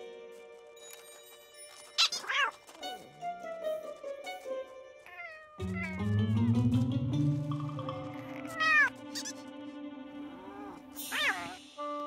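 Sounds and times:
cartoon cat meowing: 5.1 - 6.2, 8.2 - 9.4, 10.3 - 12.0
background music with bass: 5.6 - 8.4.

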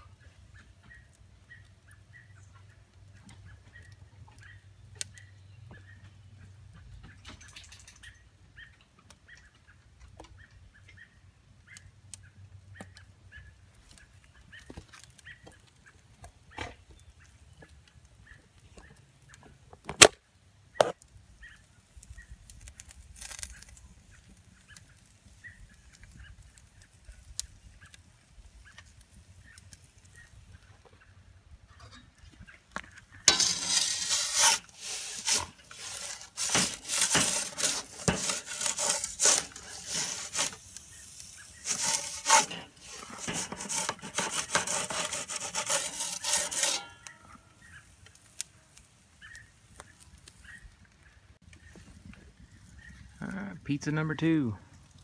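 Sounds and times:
camera handling rubbing: 33.3 - 40.7, 41.6 - 46.9.

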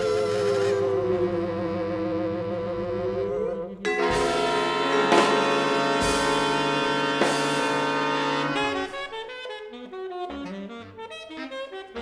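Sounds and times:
improvised ensemble music: 0.0 - 12.0.

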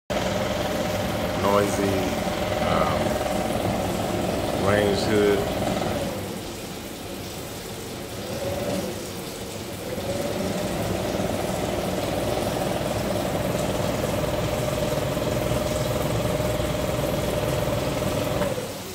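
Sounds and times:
range hood fan humming and whining: 0.1 - 18.9.

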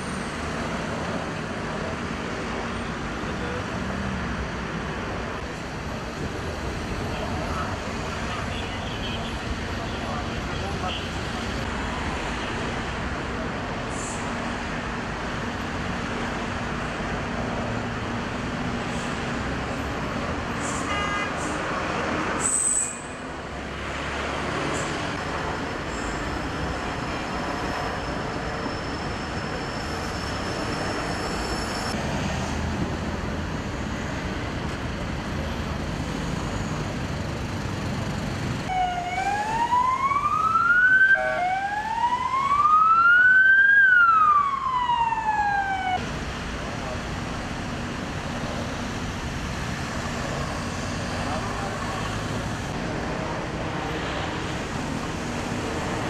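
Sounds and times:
road traffic noise: 0.0 - 56.0
emergency vehicle siren wailing: 38.7 - 46.0.

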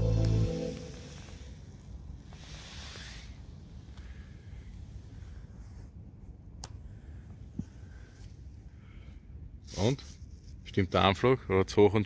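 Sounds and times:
short hiss: 2.3 - 3.4.

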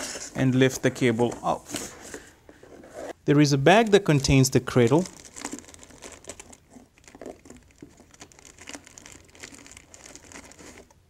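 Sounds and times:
plastic bag crinkling: 4.1 - 11.0.

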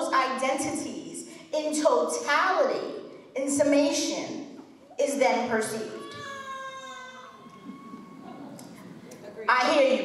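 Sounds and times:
speech at podium: 0.0 - 10.0.

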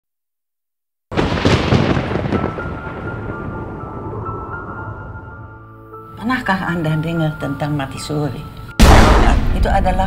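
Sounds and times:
thunder-like boom with crackling: 1.1 - 5.4, 8.8 - 10.0.

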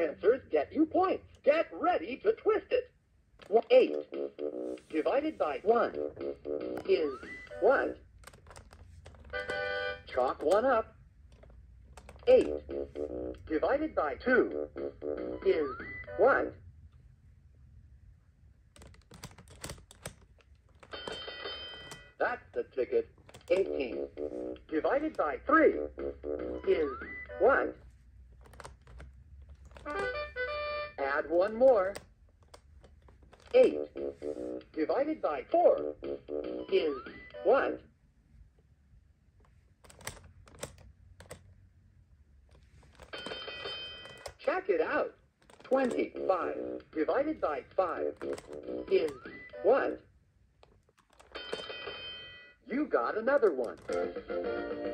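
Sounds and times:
plastic toy dials clicking: 8.2 - 10.7, 18.8 - 22.1, 23.2 - 23.7, 39.8 - 41.4, 45.4 - 46.1, 48.1 - 49.3, 50.6 - 51.7, 53.3 - 54.3.

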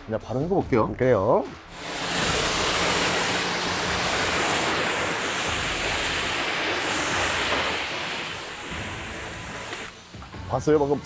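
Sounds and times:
pressure washer spraying water: 1.7 - 11.0.

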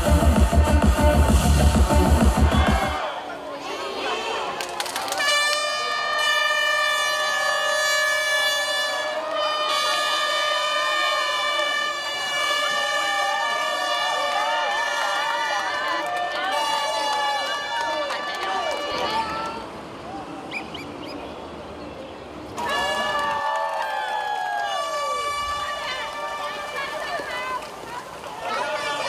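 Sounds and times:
crowd cheering and shouting: 0.0 - 6.3, 8.4 - 20.3, 22.6 - 29.0
air horn blasts: 5.1 - 15.4, 22.6 - 23.4, 24.5 - 27.6.

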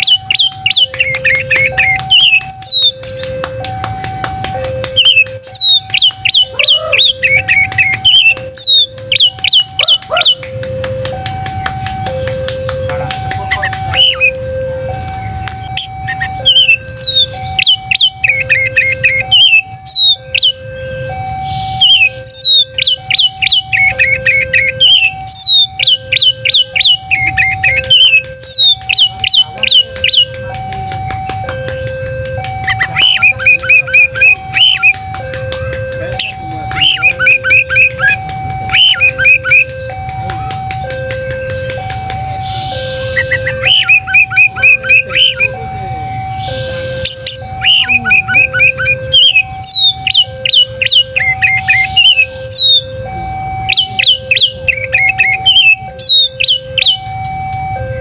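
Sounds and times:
bird singing: 0.0 - 3.4, 4.0 - 35.2, 35.8 - 57.4
looping two-note tune: 0.0 - 58.0.

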